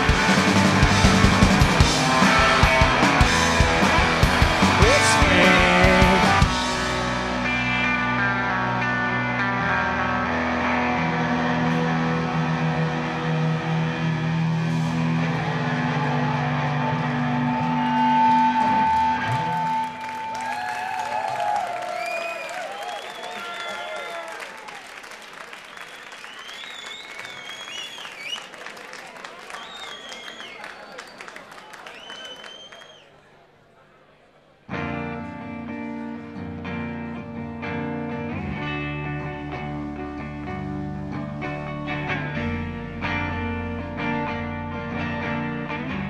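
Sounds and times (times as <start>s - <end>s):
rock band closing chord: 0.0s - 20.2s
faint audience noise: 0.0s - 46.0s.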